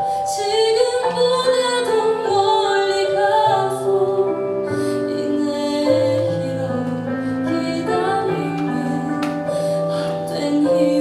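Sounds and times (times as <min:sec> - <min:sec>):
instrumental backing: 0:00.0 - 0:11.0
woman singing slow song: 0:00.2 - 0:11.0.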